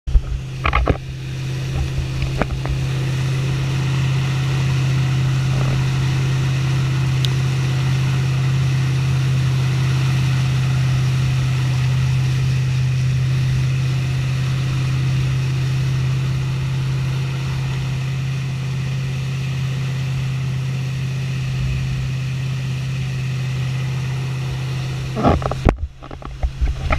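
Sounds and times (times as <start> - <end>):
boat engine droning: 0.0 - 26.9
rushing wake water: 0.1 - 26.9.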